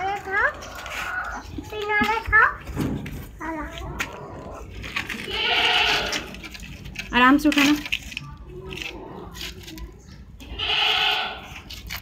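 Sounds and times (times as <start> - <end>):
animal bleating: 5.2 - 6.4, 10.4 - 11.6.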